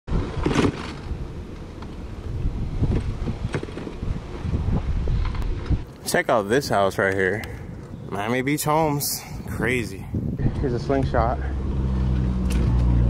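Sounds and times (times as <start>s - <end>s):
wind rumbling on microphone: 0.1s - 13.0s.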